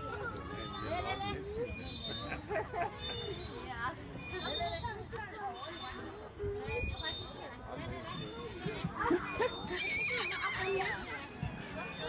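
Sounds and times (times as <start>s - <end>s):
voices: 0.0s - 12.0s
child squealing: 9.7s - 11.0s.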